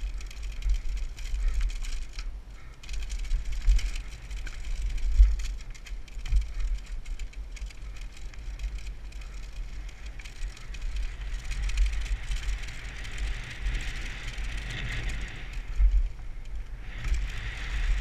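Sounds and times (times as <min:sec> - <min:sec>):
bike clattering over bumps: 0:00.0 - 0:18.0
wind buffeting microphone: 0:00.0 - 0:18.0.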